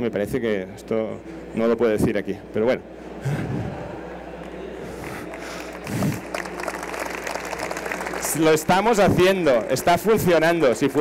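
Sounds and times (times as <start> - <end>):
audience clapping: 4.4 - 11.0.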